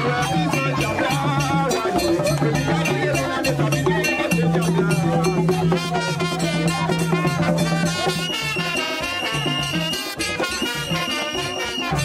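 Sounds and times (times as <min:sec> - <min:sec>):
person singing: 0:00.0 - 0:08.0
drumming and percussion: 0:00.0 - 0:12.0.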